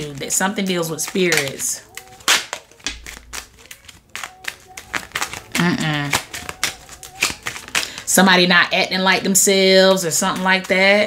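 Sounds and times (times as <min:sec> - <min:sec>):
card deck snapping: 0:00.0 - 0:08.1
cards slapping and flicking: 0:00.0 - 0:08.4, 0:09.3 - 0:11.0.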